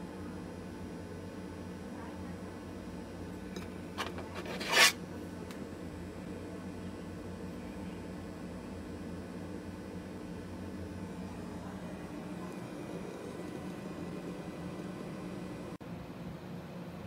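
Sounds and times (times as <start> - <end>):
computer cooling fans whirring: 0.0 - 17.0.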